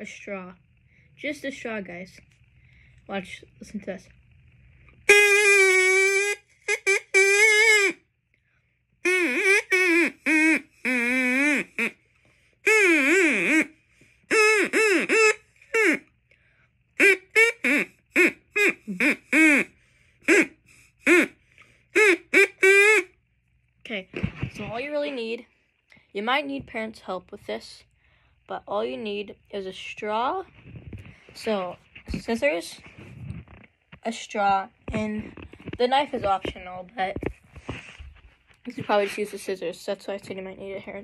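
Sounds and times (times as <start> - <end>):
reed whistle notes: 5.1 - 8.0, 9.0 - 11.9, 12.7 - 13.7, 14.3 - 16.0, 22.0 - 23.1.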